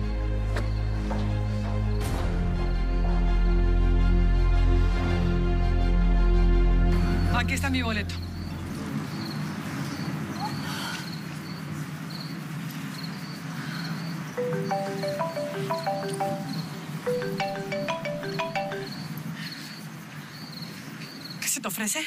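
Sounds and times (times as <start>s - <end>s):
crickets chirping: 0.0s - 3.7s, 6.9s - 22.0s
low night-time hum: 6.6s - 21.0s
mobile phone ringtone: 14.4s - 19.2s.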